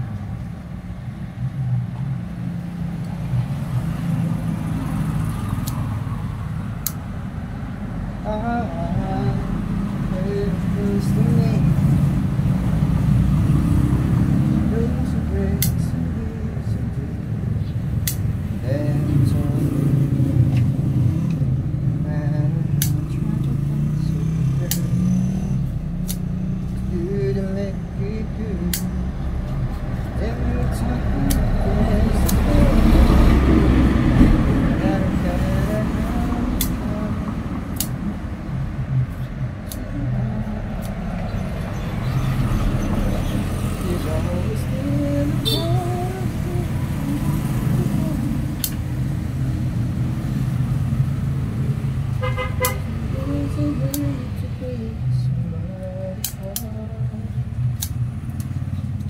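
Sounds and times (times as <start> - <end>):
indistinct voices: 7.9 - 59.0
scissors snipping: 15.6 - 15.8, 22.8 - 23.6, 24.6 - 25.0, 26.0 - 26.9, 28.7 - 29.0, 36.6 - 36.8, 37.7 - 38.0, 39.1 - 40.0, 40.8 - 41.0, 56.2 - 56.8, 57.7 - 59.0.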